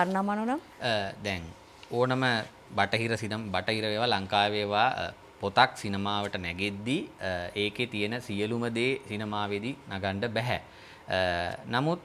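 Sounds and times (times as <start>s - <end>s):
man speaking: 0.8s - 12.0s.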